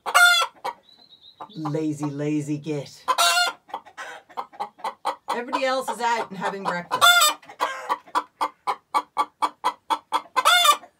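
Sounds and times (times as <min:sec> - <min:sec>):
hen clucking: 0:00.0 - 0:10.9.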